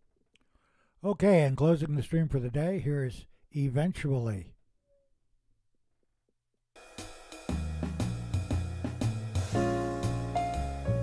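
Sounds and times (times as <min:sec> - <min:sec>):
drum kit with cymbals: 0:06.8 - 0:11.0
bass notes: 0:07.6 - 0:11.0.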